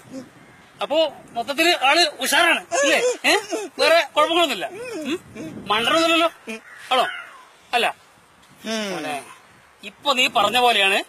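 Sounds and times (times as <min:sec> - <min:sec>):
man making non-word vocal sounds: 0:00.0 - 0:00.4, 0:01.8 - 0:07.1, 0:08.6 - 0:09.4.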